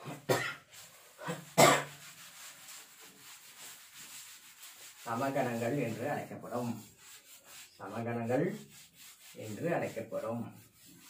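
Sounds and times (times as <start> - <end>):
man coughing: 0.1 - 0.6, 1.2 - 1.9.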